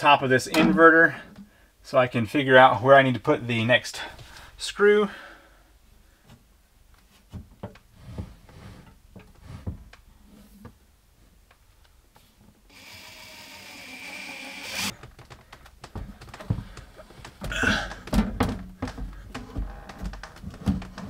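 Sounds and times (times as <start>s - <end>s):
cordless drill driving screw: 12.7s - 14.9s
knocks and thumps on wooden wall: 15.0s - 21.0s.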